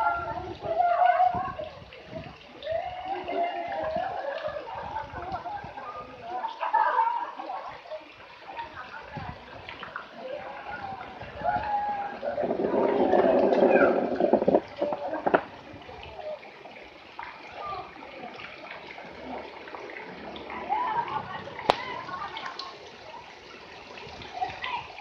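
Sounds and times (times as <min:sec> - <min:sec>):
children's voices: 0:00.0 - 0:08.2, 0:10.2 - 0:16.5, 0:17.4 - 0:18.5, 0:20.5 - 0:25.0
water splashing in pool: 0:00.0 - 0:25.0.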